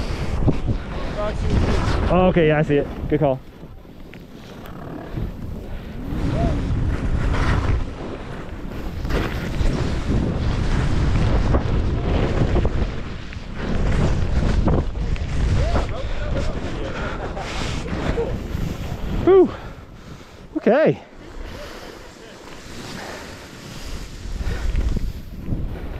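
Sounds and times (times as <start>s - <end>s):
skis scraping through snow: 0.0s - 19.2s, 19.9s - 25.9s
wind buffeting microphone: 0.0s - 25.9s.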